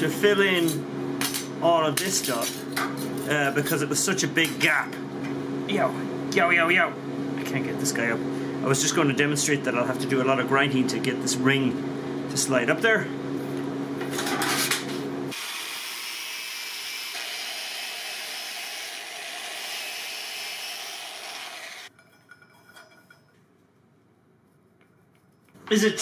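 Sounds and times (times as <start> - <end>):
power grinder grinding metal: 15.3 - 21.9.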